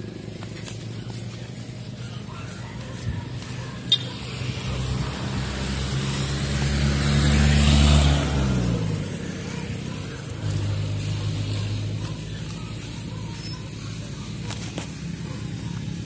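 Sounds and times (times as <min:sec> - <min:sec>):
steady engine hum: 0:00.0 - 0:16.0
vehicle passing by: 0:00.0 - 0:16.0.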